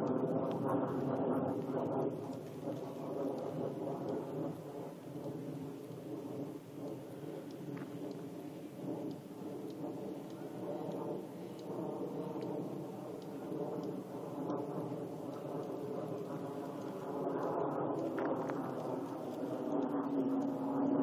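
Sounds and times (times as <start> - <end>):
jet engine rumble: 0.0 - 21.0.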